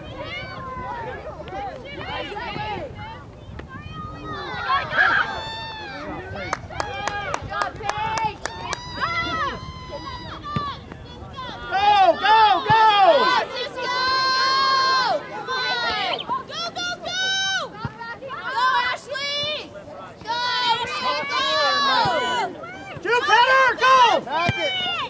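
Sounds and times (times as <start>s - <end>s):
voices shouting and calling out: 0.0s - 25.0s.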